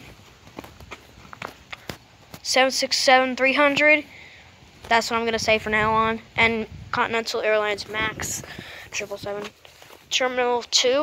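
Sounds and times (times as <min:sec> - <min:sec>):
light taps and scuffs: 0:00.0 - 0:02.5, 0:09.0 - 0:10.1.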